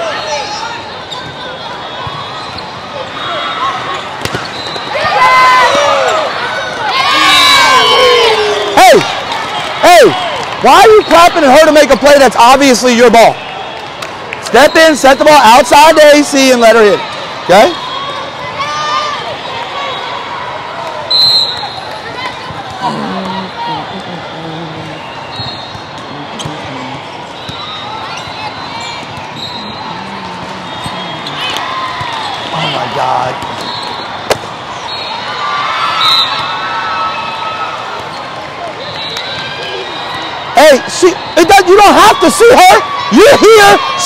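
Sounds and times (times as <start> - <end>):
hubbub of echoing hall: 0.0 - 44.0
volleyball hits: 4.1 - 6.0, 33.2 - 34.6
sneaker squeaks on court: 4.2 - 4.9
loud shouts: 4.9 - 13.2, 38.7 - 44.0
players calling out: 21.1 - 36.7, 37.8 - 44.0.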